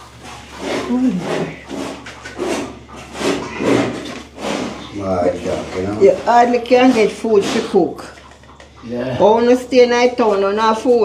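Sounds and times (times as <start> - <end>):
indistinct voices talking: 0.7 - 4.1, 4.7 - 11.0.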